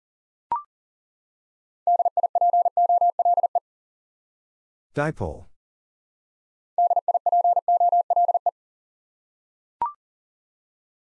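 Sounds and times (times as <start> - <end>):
morse code beeps: 1.9 - 3.6, 6.8 - 8.5.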